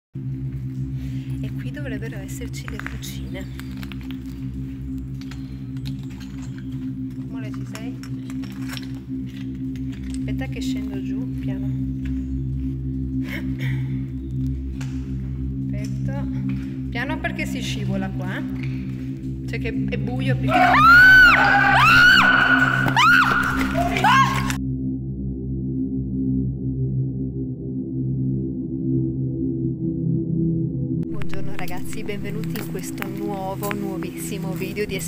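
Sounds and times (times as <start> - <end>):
eerie ambient drone music: 0.2 - 35.0
person screaming in fright: 20.5 - 24.6.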